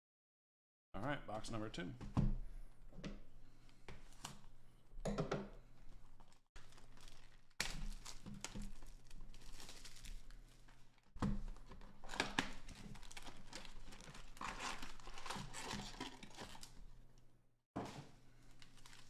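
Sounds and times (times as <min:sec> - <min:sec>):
cardboard box and packs rustling: 0:06.0 - 0:17.0, 0:17.8 - 0:19.0
shrink wrap crinkling and tearing: 0:06.2 - 0:17.2, 0:18.3 - 0:19.0.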